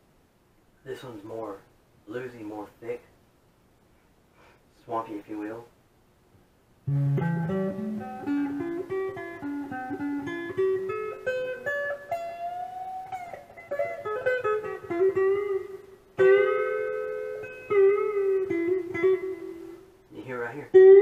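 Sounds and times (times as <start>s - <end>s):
electric guitar lead lines: 6.8s - 21.0s.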